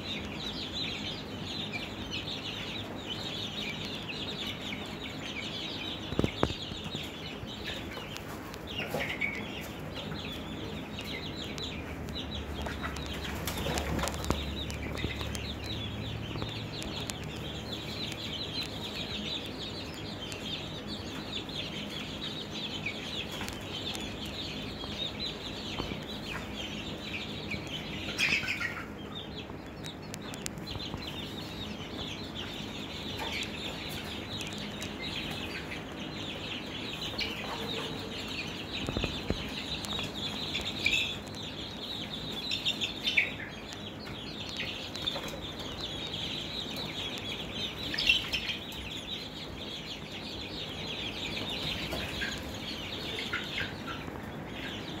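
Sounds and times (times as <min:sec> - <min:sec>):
chicks peeping and chirping: 0:00.0 - 0:55.0.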